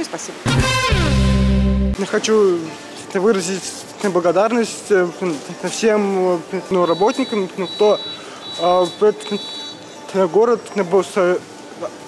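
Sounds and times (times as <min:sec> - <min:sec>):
man speaking: 0:02.0 - 0:09.5
high-pitched electronic beeps: 0:06.7 - 0:09.9.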